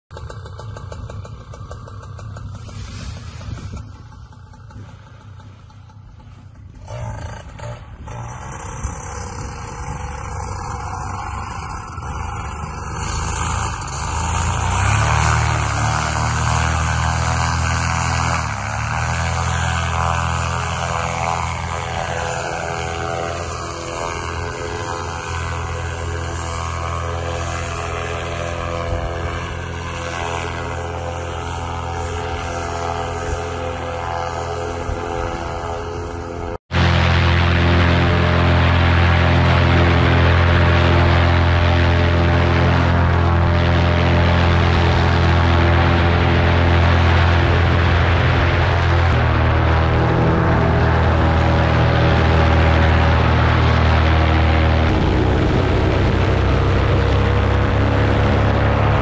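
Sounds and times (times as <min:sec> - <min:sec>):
paramotor engine and propeller: 0:00.1 - 0:59.0.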